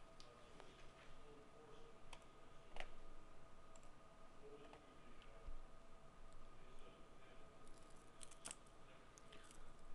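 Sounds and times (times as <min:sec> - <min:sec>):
thin steady hum: 0:00.0 - 0:09.9.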